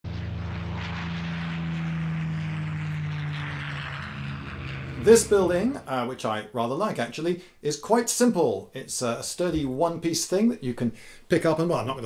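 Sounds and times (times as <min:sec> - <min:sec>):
engine drone: 0:00.0 - 0:06.2.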